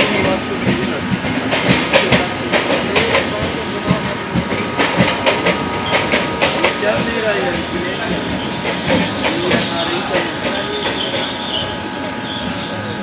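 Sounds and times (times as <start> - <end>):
train wheels rumbling on track: 0.0 - 13.0
high wheel squeal: 5.7 - 7.2, 8.2 - 13.0.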